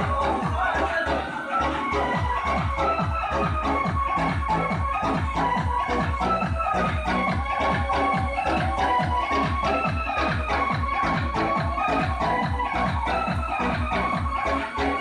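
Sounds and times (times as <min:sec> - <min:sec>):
dance music with kick drums: 0:00.0 - 0:15.0.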